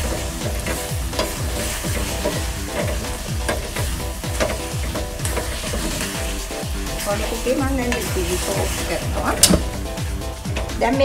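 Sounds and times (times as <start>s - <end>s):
wooden spatula scraping a metal pot: 0.0s - 10.9s
music with thumping beat: 0.0s - 11.0s.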